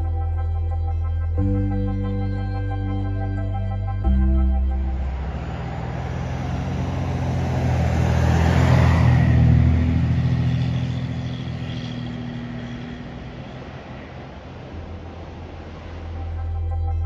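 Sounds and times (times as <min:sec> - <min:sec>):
motor vehicle passing: 0:04.5 - 0:17.0.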